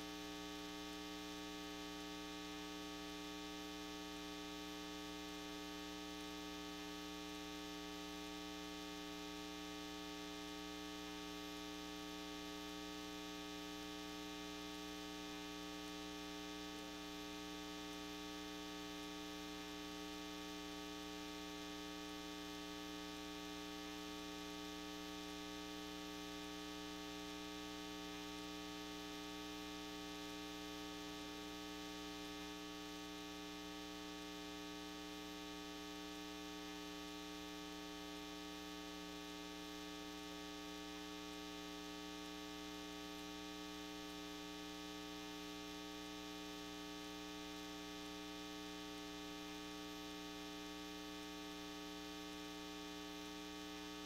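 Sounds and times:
electrical mains hum: 0.0 - 54.0.

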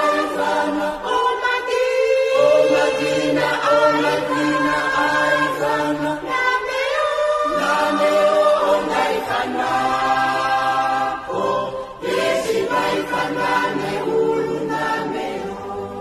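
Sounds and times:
choir singing gospel in harmony: 0.0 - 16.0.

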